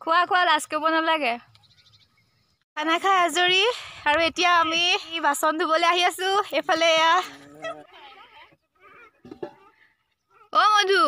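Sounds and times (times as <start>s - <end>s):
woman talking: 0.0s - 1.4s, 2.8s - 8.2s, 10.5s - 11.0s.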